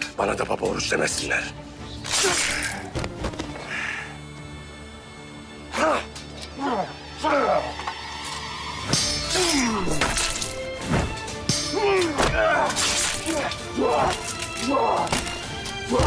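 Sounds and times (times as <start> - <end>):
dramatic film score: 0.0 - 16.0
men shouting and yelling: 5.6 - 8.2, 11.5 - 16.0.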